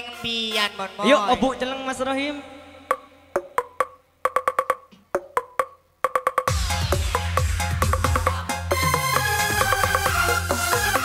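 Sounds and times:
wood block strikes: 0:02.9 - 0:06.5, 0:07.8 - 0:10.2.

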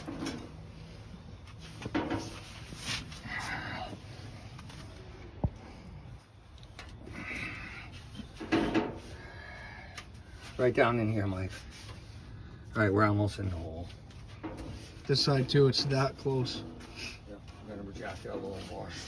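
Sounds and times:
metal parts clunking and scraping: 0:00.0 - 0:00.7, 0:01.6 - 0:02.7, 0:08.3 - 0:09.2.

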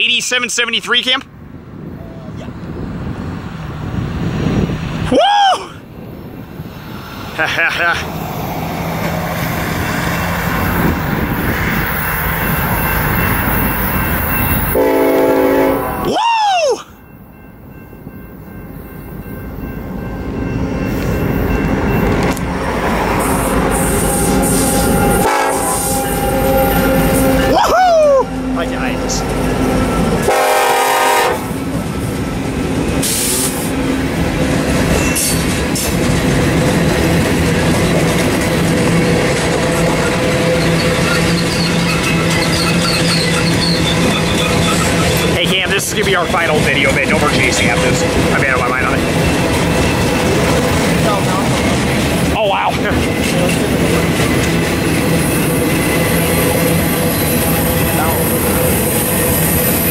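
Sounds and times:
freight locomotives rumbling: 0:00.0 - 0:59.9
train air horn: 0:14.7 - 0:16.1, 0:23.2 - 0:27.6, 0:30.2 - 0:31.6.

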